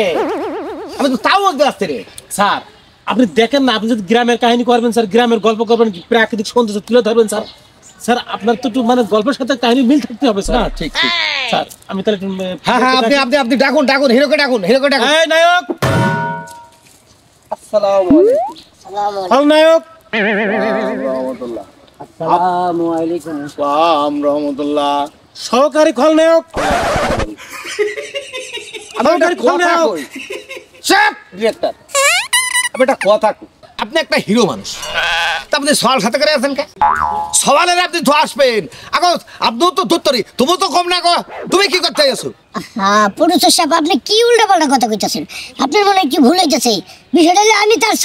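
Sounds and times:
men talking: 0.0s - 15.8s, 17.5s - 31.9s, 32.6s - 48.0s
bleat-like cry: 20.1s - 21.3s, 34.7s - 35.5s.

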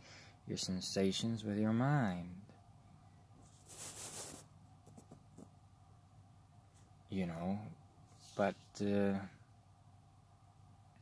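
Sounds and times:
rustling hiss close to microphone: 3.4s - 5.6s, 8.0s - 9.0s.

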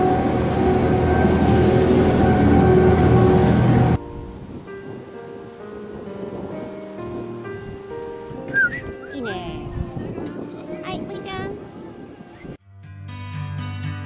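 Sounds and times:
monorail car rushing with whine: 0.0s - 5.0s
soft background music: 0.0s - 12.6s.

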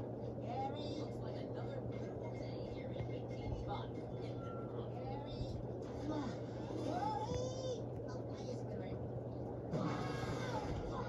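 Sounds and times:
steady low hum: 0.0s - 11.0s
cartoon voices from television: 0.4s - 11.0s.

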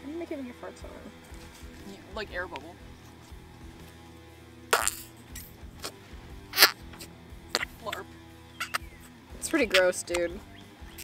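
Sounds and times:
quiet background music: 0.0s - 11.0s
noise putty squelching: 6.6s - 8.0s, 8.6s - 9.0s.

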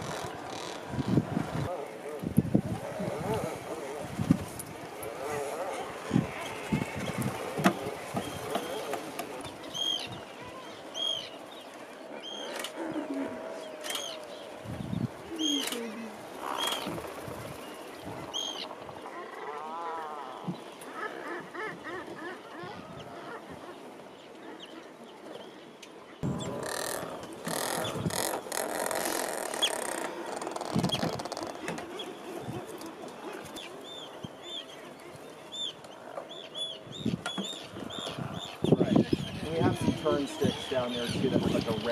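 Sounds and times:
high seabird calls: 5.1s - 11.5s, 12.1s - 23.9s, 26.2s - 41.9s
lower bird calls: 5.2s - 23.8s, 26.2s - 32.7s.

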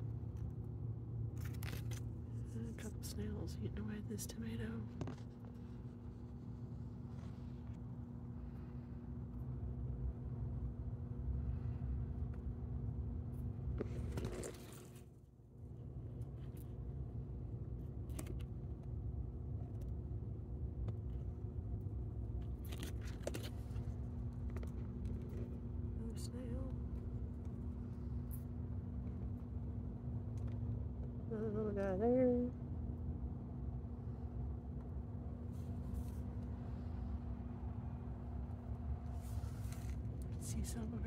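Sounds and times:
constant mechanical hum: 0.0s - 41.0s
steady low rumble: 0.0s - 41.0s
faint clicks and scrapes: 13.7s - 15.2s, 20.8s - 25.8s, 39.0s - 40.4s.

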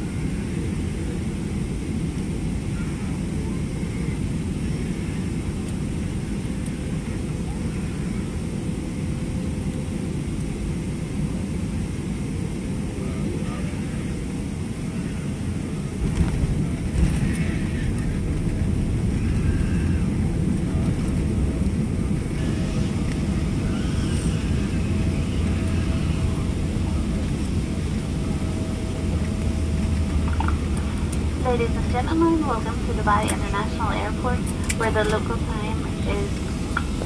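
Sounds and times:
airliner rolling rumble: 0.0s - 37.0s
airplane cabin rush: 11.9s - 37.0s.

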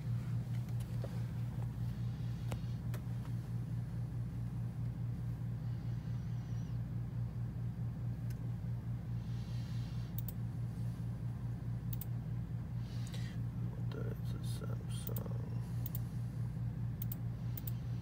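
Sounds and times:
pulsing low hum: 0.0s - 18.0s
faint clicks: 10.2s - 10.4s, 11.9s - 12.1s, 15.8s - 16.1s, 17.0s - 17.8s.

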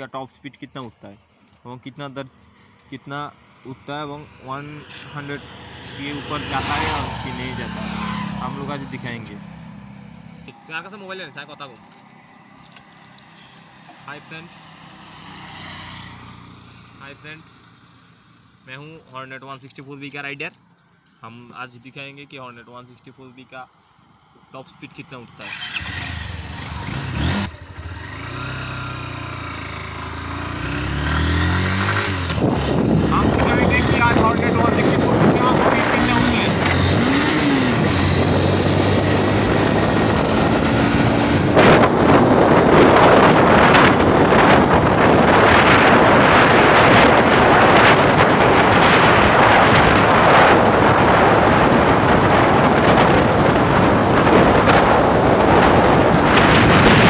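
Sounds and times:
motorcycle engine accelerating: 3.4s - 10.7s, 25.4s - 57.0s
wind noise on microphone: 30.8s - 57.0s.

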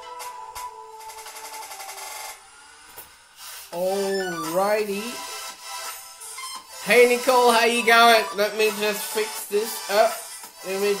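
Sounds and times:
trap music with ticking beat: 4.0s - 11.0s.

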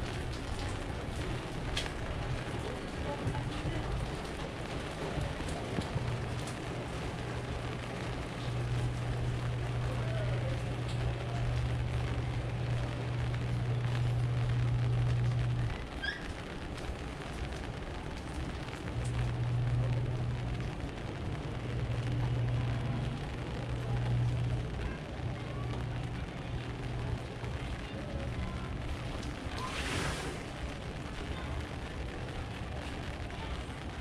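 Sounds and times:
low steady rumble: 0.0s - 34.0s
outdoor alley ambience: 0.0s - 34.0s.

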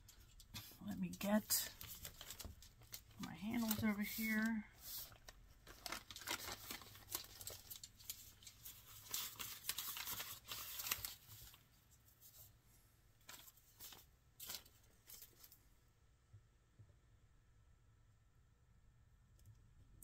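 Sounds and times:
newspaper rustling and crinkling: 0.0s - 12.5s, 13.2s - 15.6s.

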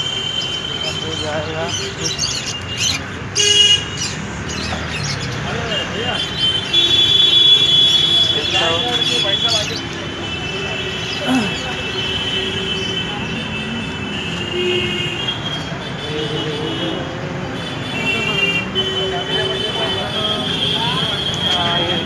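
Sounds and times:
traffic: 0.0s - 22.0s
people's voices: 0.6s - 22.0s.

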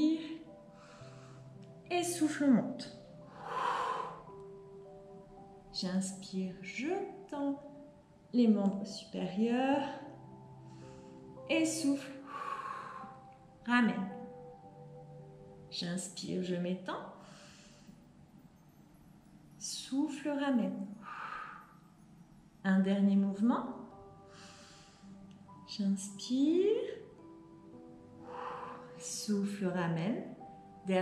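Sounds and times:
soft background music: 0.0s - 31.0s
woman breathing in softly: 0.7s - 1.6s, 3.3s - 4.6s, 10.5s - 11.4s, 12.2s - 13.4s, 17.2s - 18.1s, 20.9s - 22.1s, 24.2s - 25.3s, 28.2s - 29.0s
woman exhaling: 3.3s - 4.4s, 21.0s - 21.8s, 28.2s - 29.0s.

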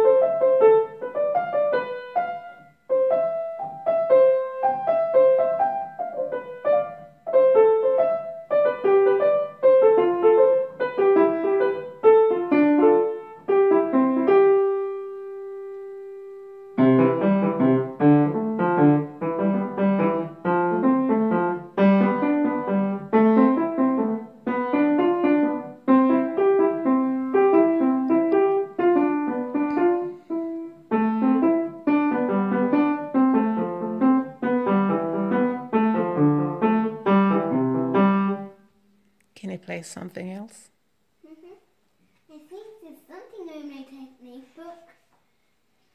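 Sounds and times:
child playing piano melody: 0.0s - 38.6s.

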